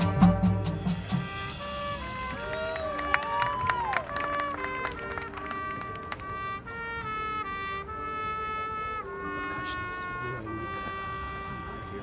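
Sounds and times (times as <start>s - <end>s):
marching band brass playing: 0.0s - 12.0s.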